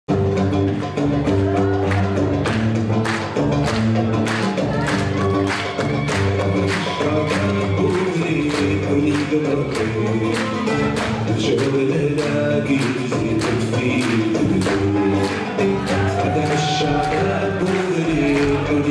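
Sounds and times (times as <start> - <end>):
plucked bass lute riff: 0.1 - 18.9.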